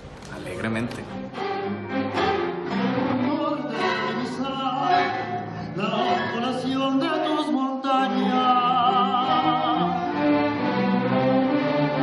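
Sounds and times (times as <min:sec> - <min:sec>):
string orchestra playing: 0:00.6 - 0:12.0.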